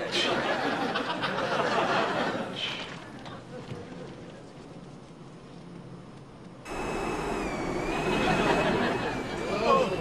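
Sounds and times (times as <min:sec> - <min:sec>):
low cabin hum: 0:05.4 - 0:10.0
jet engines roaring with whine: 0:06.7 - 0:10.0.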